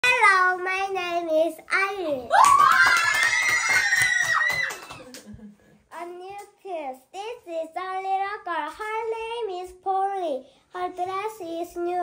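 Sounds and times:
girl reading aloud sing-song: 0.0 - 2.3, 5.9 - 12.0.

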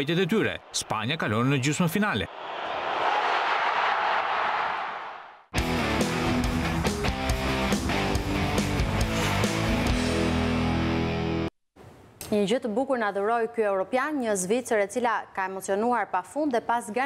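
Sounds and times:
stadium crowd roaring: 0.0 - 6.0
electric guitar rock jingle: 5.6 - 11.5.

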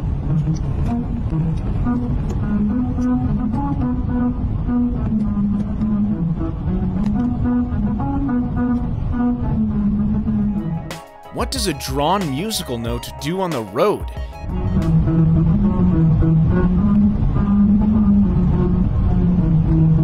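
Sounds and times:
musical road tune: 6.1 - 16.8.

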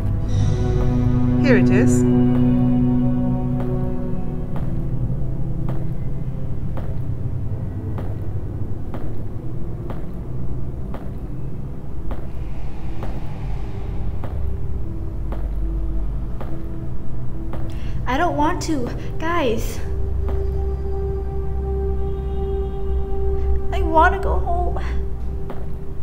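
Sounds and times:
low rumbling drone: 0.0 - 26.0.

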